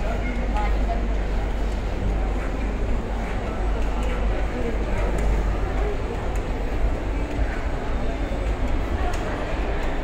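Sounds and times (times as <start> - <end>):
shopping mall background rumble: 0.0 - 10.0.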